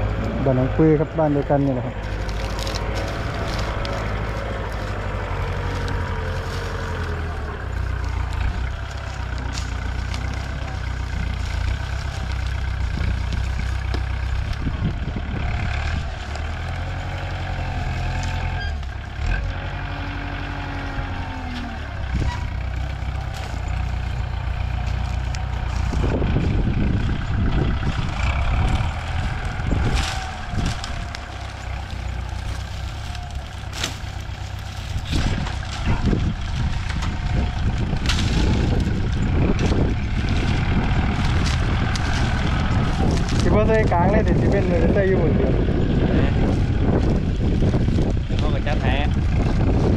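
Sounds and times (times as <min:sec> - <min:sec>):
diesel engine running: 0:00.0 - 0:49.9.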